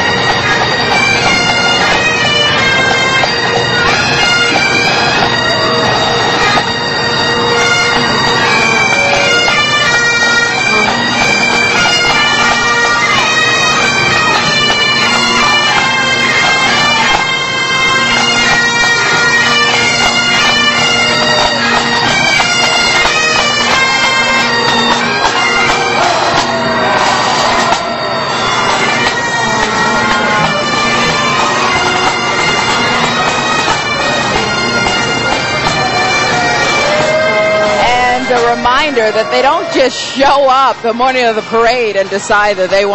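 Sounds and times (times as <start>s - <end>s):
bagpipe drones: 0.0s - 42.9s
bagpipes playing a tune: 0.0s - 42.9s.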